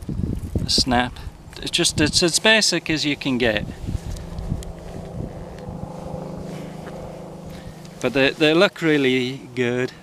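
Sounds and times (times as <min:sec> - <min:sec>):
vehicle engine humming: 0:01.1 - 0:10.0.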